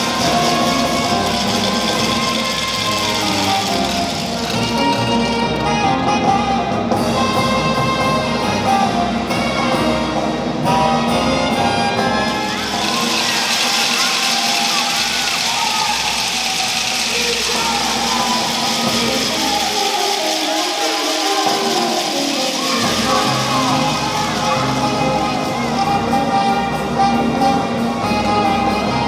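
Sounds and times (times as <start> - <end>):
crowd cheering and whistling: 0.0 - 4.9, 12.0 - 26.1
brass band playing: 0.0 - 29.0.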